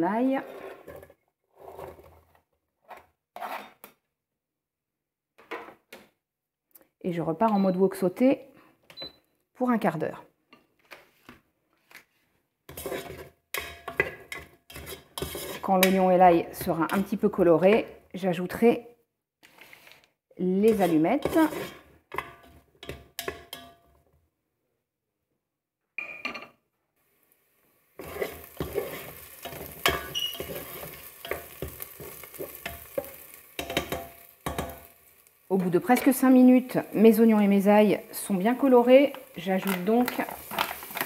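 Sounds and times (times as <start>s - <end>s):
knife scraping cutting board: 0.4s - 2.1s, 2.9s - 3.9s, 12.7s - 13.4s, 14.3s - 15.8s, 20.7s - 21.9s, 28.0s - 31.0s.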